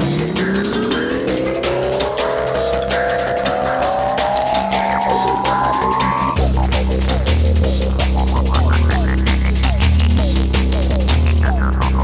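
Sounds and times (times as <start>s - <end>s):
rising synth riser: 0.0s - 9.6s
fast hi-hat pattern: 0.0s - 12.0s.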